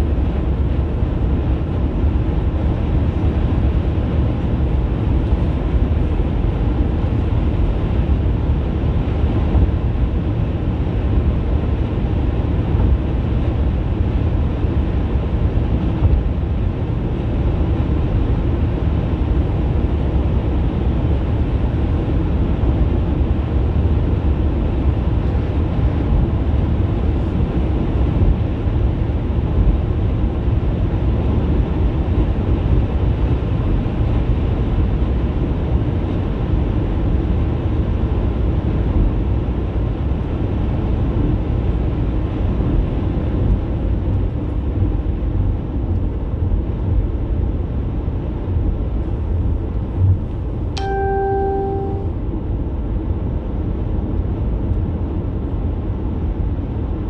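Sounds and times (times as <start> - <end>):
car road and engine noise: 0.0 - 57.0
short electronic beep: 50.8 - 52.1.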